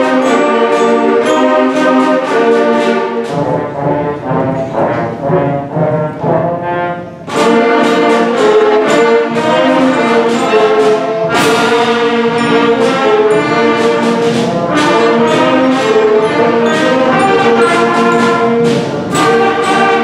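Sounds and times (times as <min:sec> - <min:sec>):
concert band playing a march: 0:00.0 - 0:20.0.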